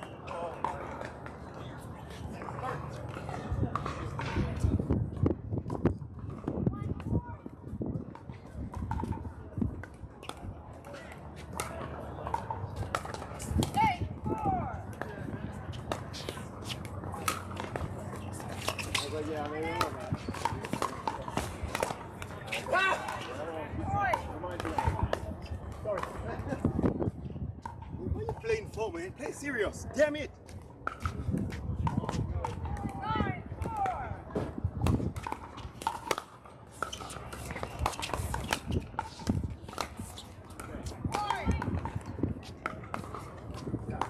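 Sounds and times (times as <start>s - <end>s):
voices: 31.1s - 44.0s.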